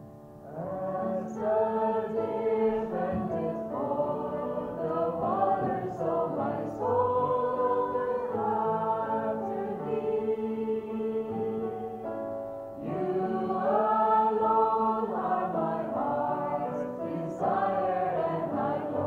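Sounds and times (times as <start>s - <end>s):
piano accompaniment: 0.0s - 19.0s
women singing a worship song: 0.5s - 12.0s, 12.8s - 19.0s.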